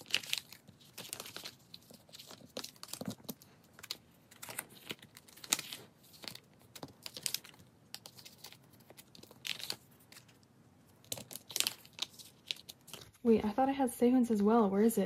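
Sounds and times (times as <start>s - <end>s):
plastic binder sleeves crinkling: 0.0s - 13.3s.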